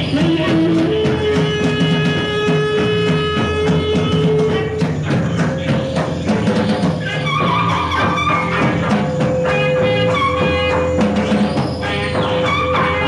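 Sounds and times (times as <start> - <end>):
repeating bass and drum pattern: 0.0 - 13.0.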